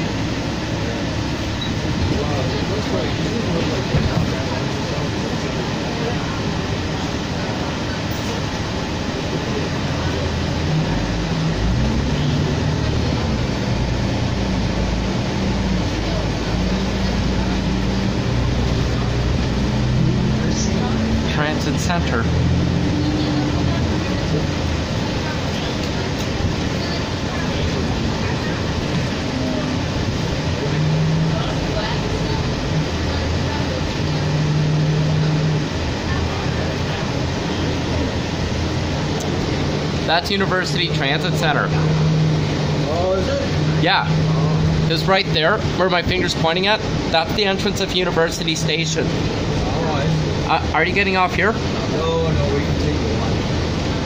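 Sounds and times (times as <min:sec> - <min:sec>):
bus engine drone and road noise: 0:00.0 - 0:54.0.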